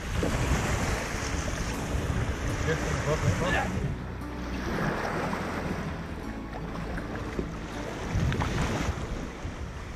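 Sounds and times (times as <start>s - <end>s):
small waves washing in shallows: 0.0s - 9.9s
wind rumbling on microphone: 0.0s - 9.9s.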